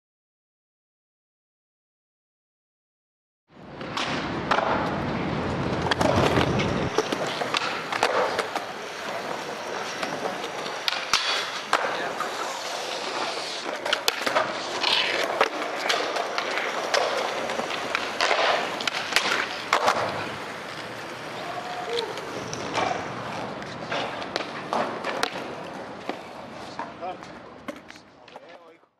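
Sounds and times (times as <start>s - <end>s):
skateboard wheels rolling on concrete: 3.5s - 28.9s
skateboard clacks: 3.8s - 28.8s.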